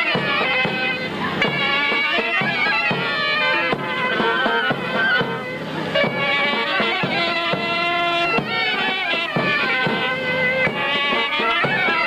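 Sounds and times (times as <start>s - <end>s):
reed wind instrument melody: 0.0s - 12.0s
sharp drum beats: 0.0s - 12.0s.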